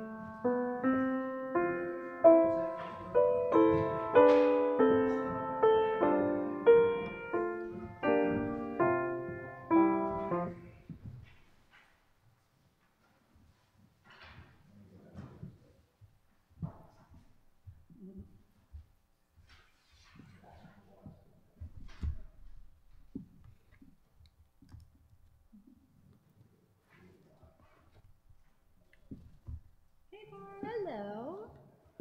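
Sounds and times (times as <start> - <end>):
piano chords: 0.0 - 10.9
faint knocks and rustles: 0.0 - 31.0.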